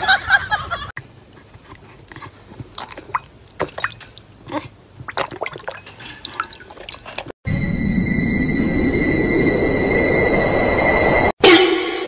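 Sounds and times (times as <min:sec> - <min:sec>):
dog splashing water in bowl: 0:02.7 - 0:04.4, 0:05.0 - 0:07.3
low rushing drone with high tones: 0:07.5 - 0:11.3.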